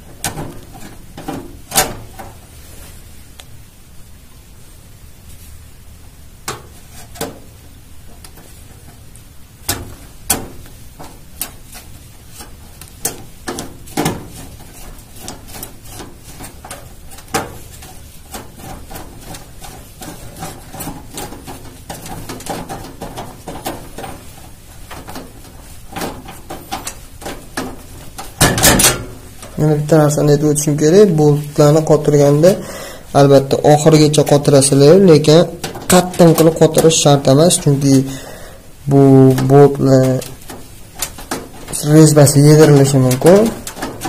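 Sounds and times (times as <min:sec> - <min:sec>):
metal clatter: 0:00.0 - 0:02.7, 0:06.4 - 0:32.6, 0:33.4 - 0:38.2, 0:39.0 - 0:44.0
metal clicks and scrapes: 0:06.4 - 0:29.7, 0:39.3 - 0:44.0.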